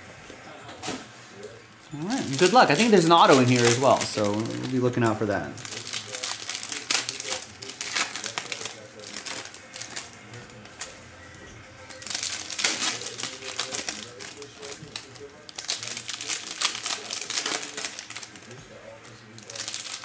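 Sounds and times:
foil wrappers crinkling: 0:01.9 - 0:11.1, 0:11.8 - 0:20.0.

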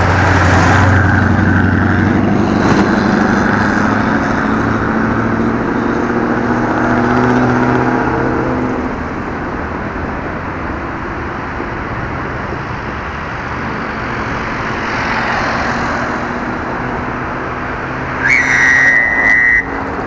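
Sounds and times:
hum of vehicle engines: 0:00.0 - 0:20.0.

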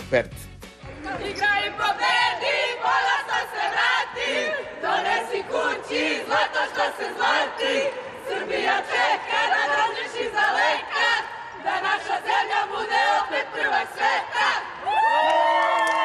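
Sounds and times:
young women chanting: 0:01.0 - 0:16.0.

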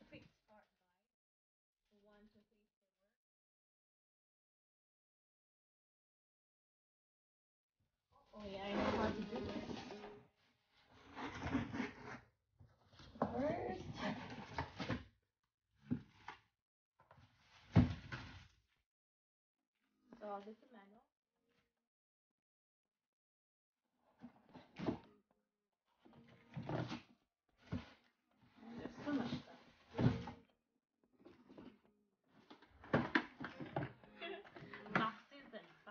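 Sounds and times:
cardboard scraping: 0:08.4 - 0:10.2, 0:10.9 - 0:12.2, 0:13.1 - 0:15.1, 0:17.2 - 0:18.6, 0:26.3 - 0:30.4
cardboard box scraping and rustling: 0:08.5 - 0:10.2, 0:10.9 - 0:12.2, 0:13.8 - 0:15.0.

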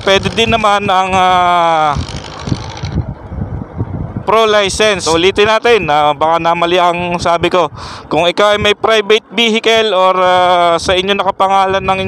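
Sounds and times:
motorcycle engine and road rumble: 0:00.0 - 0:12.0
wind buffeting microphone: 0:00.0 - 0:12.0.

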